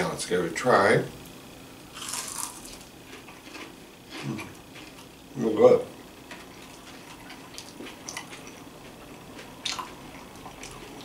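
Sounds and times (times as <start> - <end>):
crunching bites and chewing: 1.9 - 5.1, 7.5 - 11.0.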